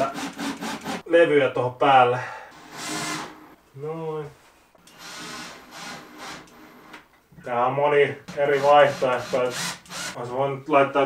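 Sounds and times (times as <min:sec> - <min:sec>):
cordless drill driving screw into wood: 0:02.6 - 0:03.4, 0:04.8 - 0:07.0, 0:08.3 - 0:10.2.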